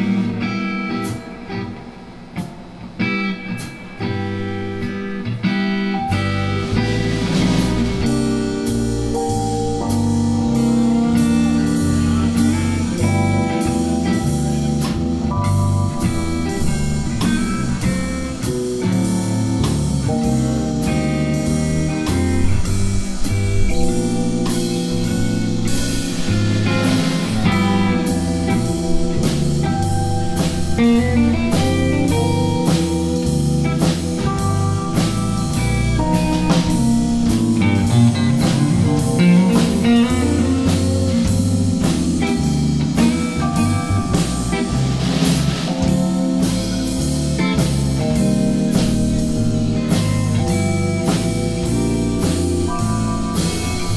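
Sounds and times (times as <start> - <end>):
blues band playing: 0.0 - 53.9
cymbal wash: 0.0 - 53.9
drum hits: 6.1 - 53.9.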